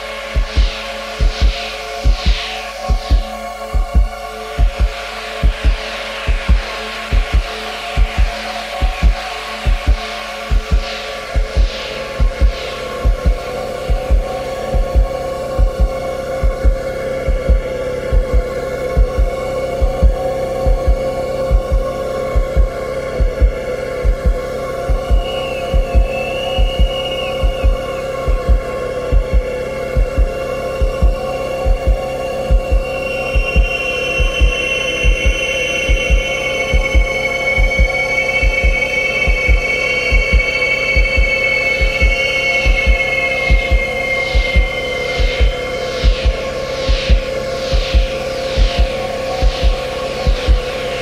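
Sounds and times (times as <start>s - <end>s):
droning chord music: 0.0s - 51.0s
low thumping beat: 0.0s - 51.0s.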